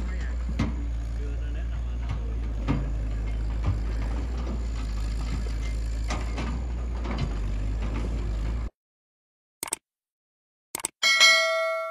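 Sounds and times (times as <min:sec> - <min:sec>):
excavator knocks: 0:00.0 - 0:01.0, 0:01.8 - 0:08.5
diesel engine rumbling: 0:00.0 - 0:08.8.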